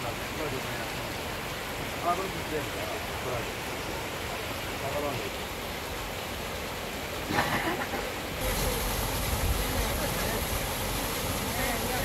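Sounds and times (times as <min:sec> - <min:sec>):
water gushing into stone basin: 0:00.0 - 0:12.0
water rushing over rocks: 0:00.0 - 0:12.0.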